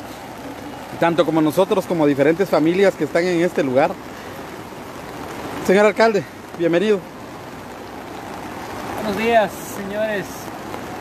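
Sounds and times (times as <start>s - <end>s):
heavy rain and floodwater rushing: 0.0s - 11.0s.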